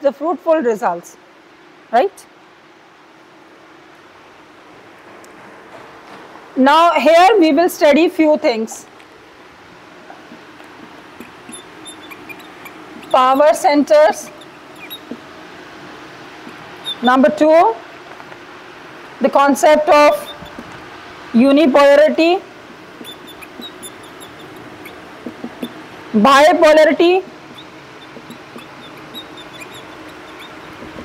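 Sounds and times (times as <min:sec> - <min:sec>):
room noise: 0:08.9 - 0:31.0
marker squeaking on whiteboard: 0:11.2 - 0:15.2, 0:16.5 - 0:17.2, 0:20.1 - 0:20.7, 0:23.0 - 0:25.8, 0:27.5 - 0:31.0.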